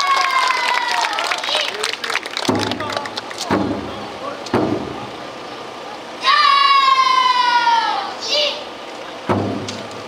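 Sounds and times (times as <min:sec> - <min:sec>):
loud high long shout: 0:00.0 - 0:01.8, 0:06.2 - 0:08.7
taiko drum thuds: 0:02.4 - 0:02.9, 0:03.5 - 0:05.1, 0:09.2 - 0:09.9.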